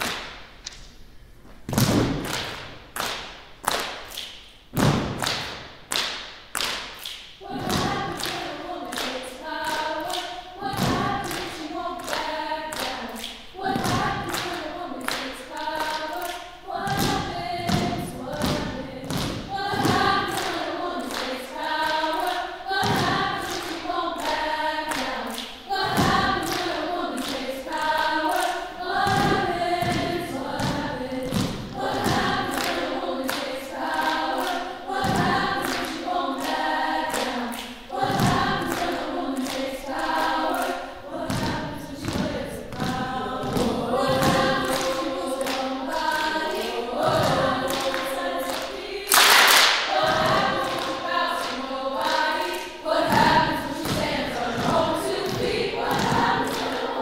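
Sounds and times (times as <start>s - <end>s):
women's choir singing: 7.3s - 57.0s.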